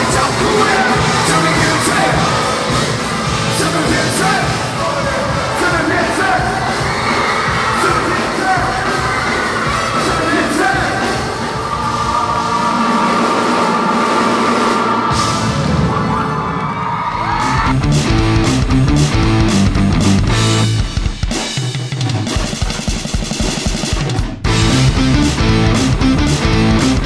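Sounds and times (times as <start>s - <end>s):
drum kit steady beat: 0.0s - 15.7s, 17.3s - 27.0s
crowd voices: 0.0s - 19.5s
live band music: 0.0s - 27.0s.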